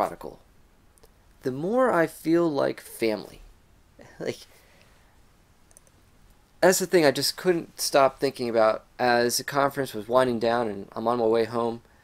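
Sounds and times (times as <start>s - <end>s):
man speaking: 0.0s - 0.4s, 1.4s - 4.5s, 6.6s - 11.8s.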